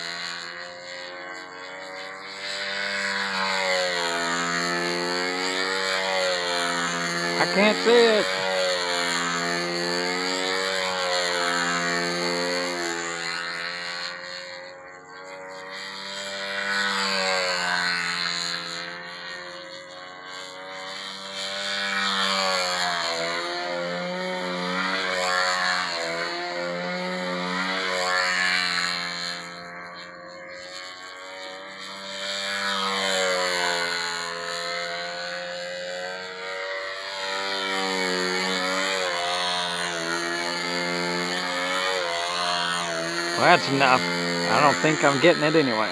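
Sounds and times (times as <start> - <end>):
model airplane engine buzzing: 0.0 - 45.9.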